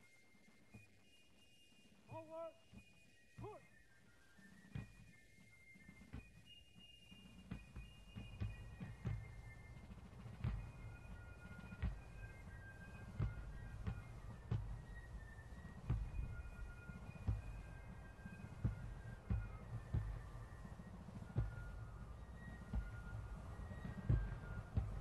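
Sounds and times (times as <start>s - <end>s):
bass drum beating slowly: 15.8s - 25.0s.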